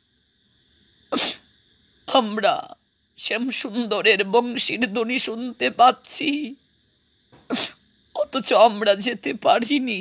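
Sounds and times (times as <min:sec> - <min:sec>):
sharp burst of breath: 0:00.6 - 0:01.7, 0:07.4 - 0:07.9
man speaking: 0:02.1 - 0:06.6, 0:08.2 - 0:10.0.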